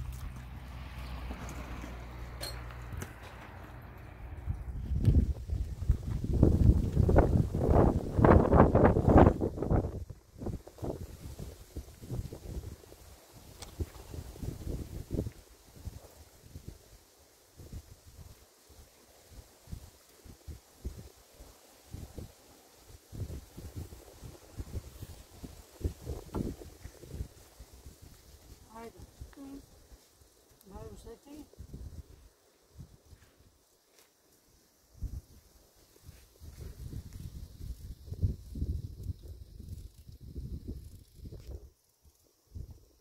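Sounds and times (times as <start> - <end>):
wind buffeting microphone: 2.9 - 16.8, 23.1 - 29.9, 30.7 - 33.2, 34.9 - 41.8
rustling in dry brush: 4.7 - 42.5.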